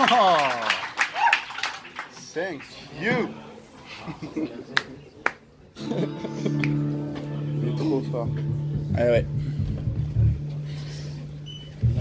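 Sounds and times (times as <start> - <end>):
band holding amplified chord: 5.8 - 12.0.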